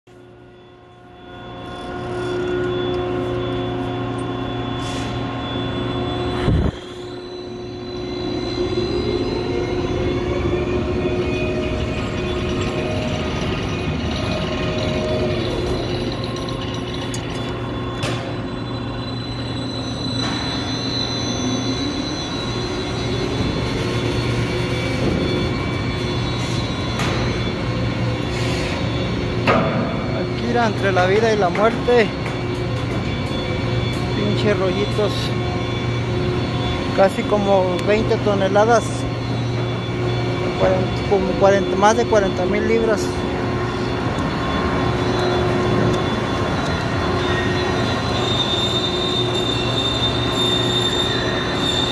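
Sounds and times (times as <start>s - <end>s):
crane electric motor hum: 0.1s - 51.9s.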